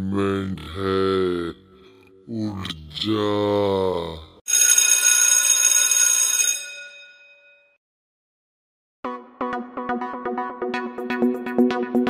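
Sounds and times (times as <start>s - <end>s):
metallic bell ring: 6.3s - 7.8s.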